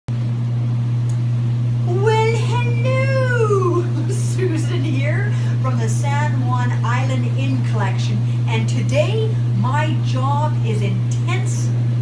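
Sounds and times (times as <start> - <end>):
bathtub jet pump humming: 0.1 - 12.0
woman's voice: 1.8 - 11.8.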